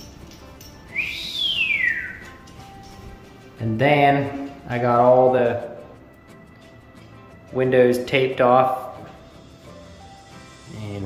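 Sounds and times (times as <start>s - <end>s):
faint background music: 0.0s - 11.0s
whistled sweeping note: 0.9s - 2.5s.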